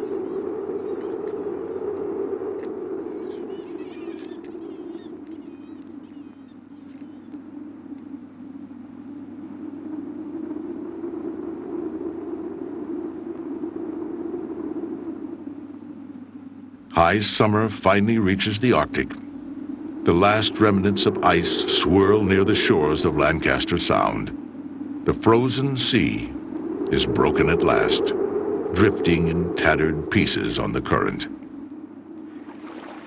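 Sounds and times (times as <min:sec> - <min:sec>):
high wavering bird calls: 0:00.0 - 0:01.4, 0:03.0 - 0:08.3
low rushing outdoor ambience: 0:00.0 - 0:33.0.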